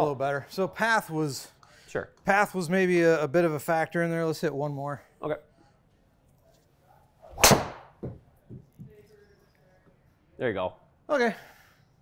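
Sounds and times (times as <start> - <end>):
golf driver striking ball: 7.3 - 7.9.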